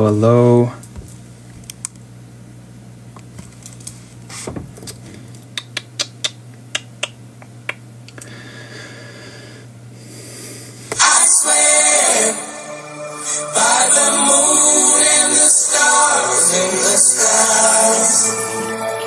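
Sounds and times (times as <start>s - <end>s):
pop song: 10.9s - 19.0s.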